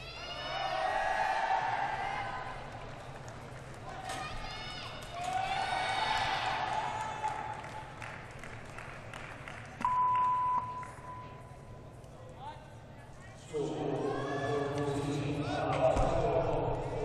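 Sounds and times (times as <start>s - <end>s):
indistinct echoing voices: 13.3s - 17.0s.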